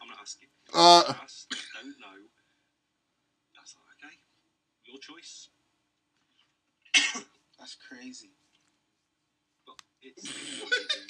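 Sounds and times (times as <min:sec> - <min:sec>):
man clearing his throat: 0:00.8 - 0:01.2.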